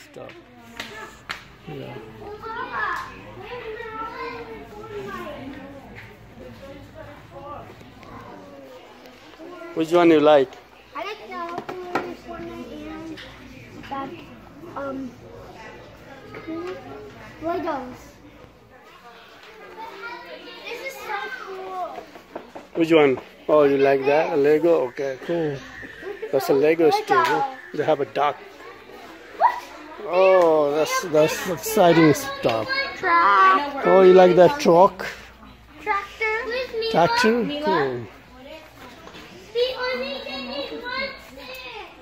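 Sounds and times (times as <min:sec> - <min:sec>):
indistinct talking with children: 0:00.0 - 0:42.0.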